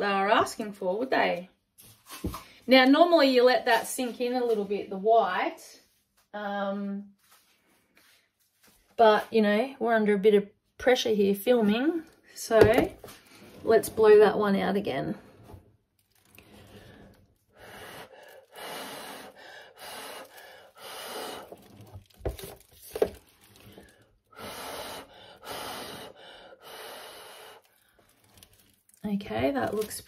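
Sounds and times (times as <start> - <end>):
hard puffs of breath: 16.5 - 21.8, 23.7 - 28.0.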